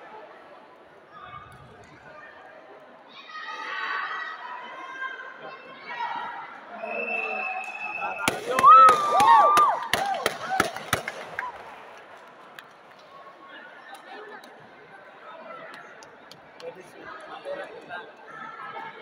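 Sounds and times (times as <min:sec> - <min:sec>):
voices in a hall: 0:00.0 - 0:19.0
loud high shout: 0:03.1 - 0:10.8
sharp slaps: 0:08.2 - 0:11.3.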